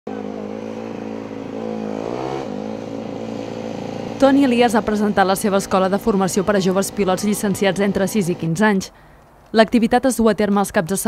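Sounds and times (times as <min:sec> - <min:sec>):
minibike engine revving: 0:00.1 - 0:08.6.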